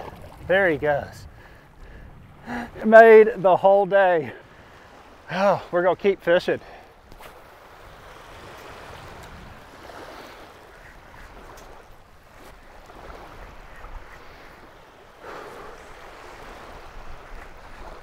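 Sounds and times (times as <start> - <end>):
small waves lapping on sand: 0.0 - 18.0
wind on microphone: 7.0 - 18.0.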